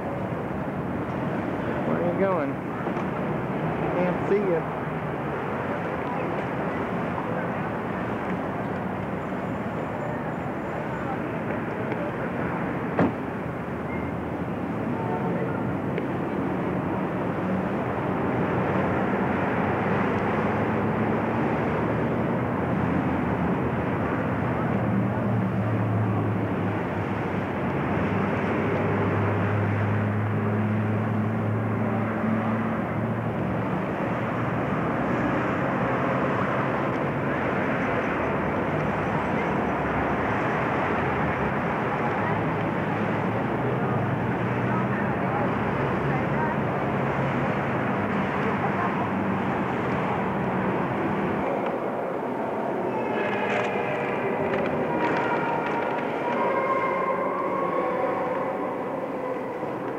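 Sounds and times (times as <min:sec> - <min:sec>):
traffic noise: 0:00.0 - 0:59.9.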